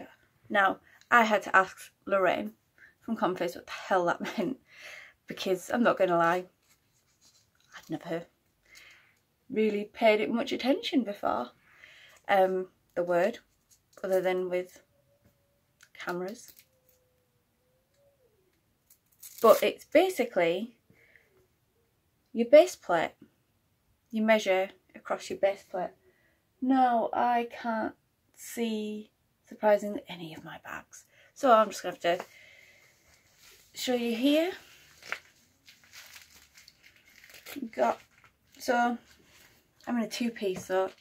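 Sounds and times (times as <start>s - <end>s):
plastic pouch and clothing rustling: 6.2s - 9.0s, 16.1s - 17.0s, 18.9s - 19.8s, 32.9s - 41.0s.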